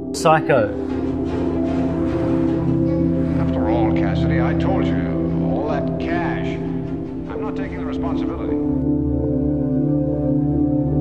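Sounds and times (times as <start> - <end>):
person speaking: 0.0 - 0.8
low held drone: 0.0 - 11.0.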